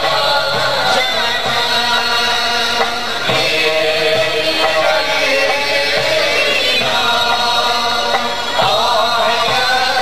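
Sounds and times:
choir singing in unison: 0.0 - 10.0.

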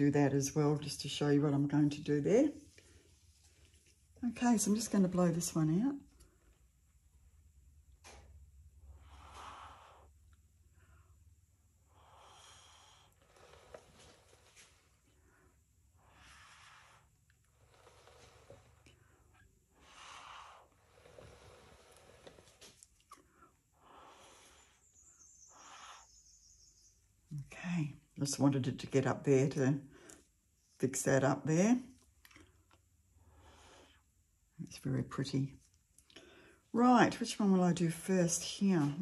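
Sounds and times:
faint puffs through paper straw: 8.8 - 11.2, 11.8 - 26.3, 33.2 - 34.2.

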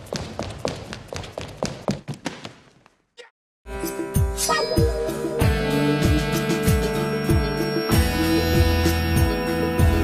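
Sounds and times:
quick footsteps with echo: 0.0 - 3.2.

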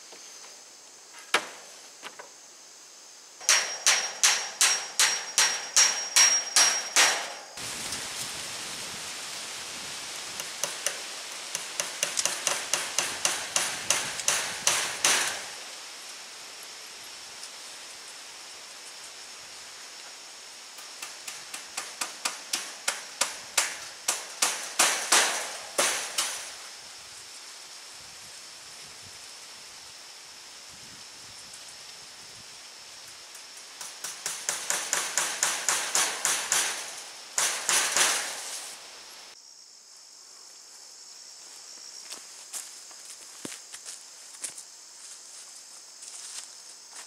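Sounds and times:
hand hammer striking: 3.4 - 7.4, 11.6 - 15.4.

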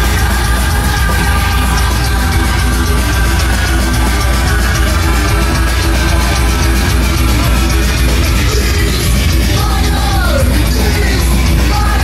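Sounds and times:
industrial metal band playing live: 0.0 - 12.0.

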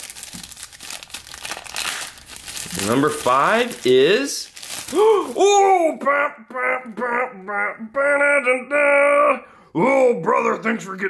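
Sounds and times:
plastic bag crinkling: 0.0 - 5.5.

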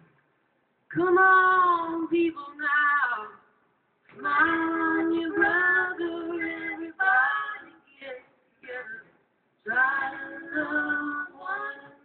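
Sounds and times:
woman singing alone: 0.9 - 3.4, 4.2 - 9.1, 9.7 - 12.0.

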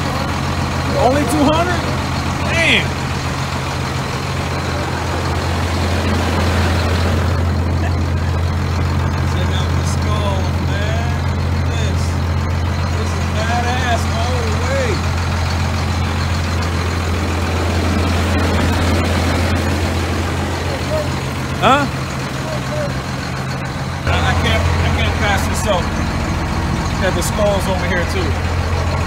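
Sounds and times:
diesel engine idling: 0.0 - 29.0.

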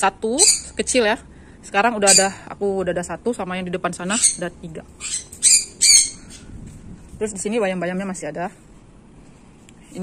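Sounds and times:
bird squawking: 0.3 - 0.8, 2.0 - 2.4, 4.0 - 6.4.

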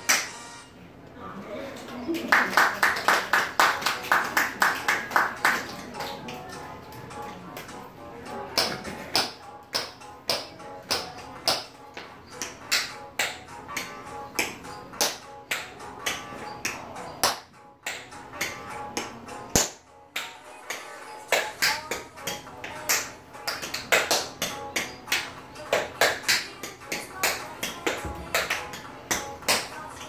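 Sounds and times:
recorded pop-jazz music: 0.0 - 0.9, 2.3 - 30.0.

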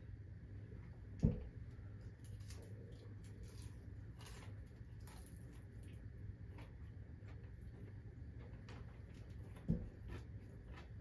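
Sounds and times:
light clicks and soft squishes of eating: 0.5 - 11.0.

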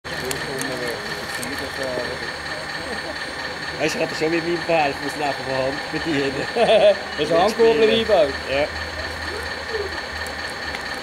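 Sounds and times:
model excavator whining: 0.0 - 11.0
people talking: 0.1 - 10.1.

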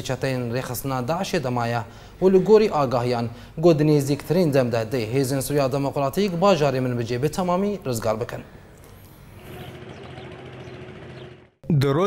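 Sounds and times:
vehicle engines running: 8.9 - 11.6.

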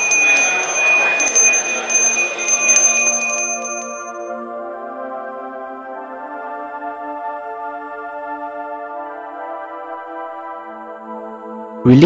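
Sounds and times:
noisy wash: 0.0 - 4.2
bell ringing: 0.0 - 4.3
soft ambient music: 4.3 - 12.0.

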